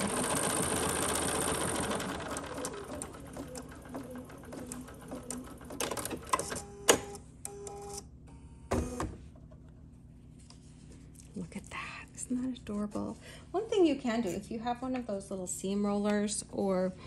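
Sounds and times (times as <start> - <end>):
embroidery machine stitching: 0.0 - 7.1.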